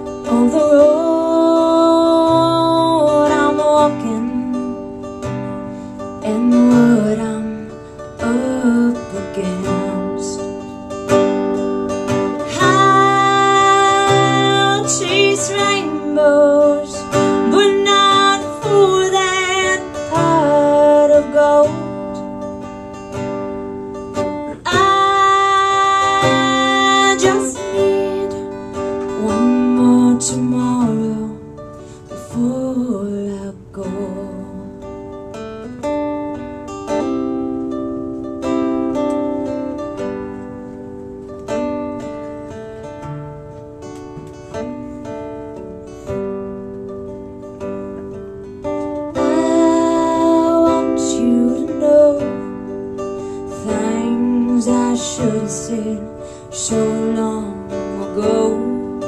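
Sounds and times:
woman singing with vibrato: 0.0 - 5.1, 6.2 - 10.8, 12.1 - 22.4, 24.4 - 34.8, 49.1 - 59.0
acoustic guitar: 0.0 - 59.0.

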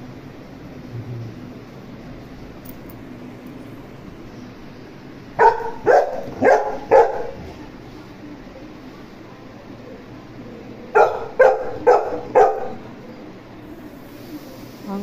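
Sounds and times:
dog barking: 5.4 - 7.6, 10.9 - 12.9.

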